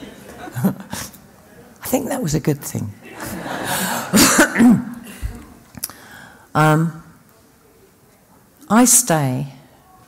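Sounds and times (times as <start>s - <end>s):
woman coughing: 4.1s - 5.0s.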